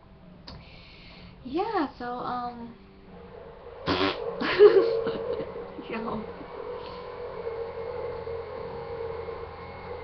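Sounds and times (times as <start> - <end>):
low hum: 0.0 - 10.0
room tone hiss: 0.0 - 10.0.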